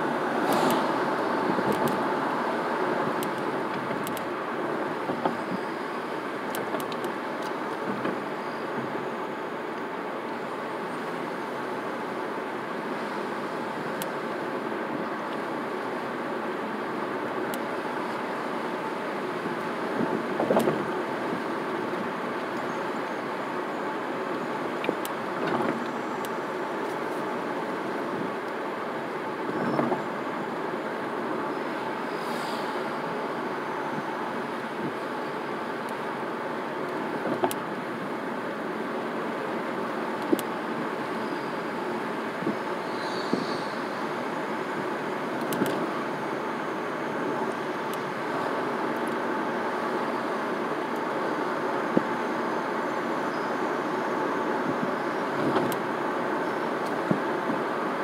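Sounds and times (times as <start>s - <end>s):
car engine and tyre noise: 0.0s - 58.0s.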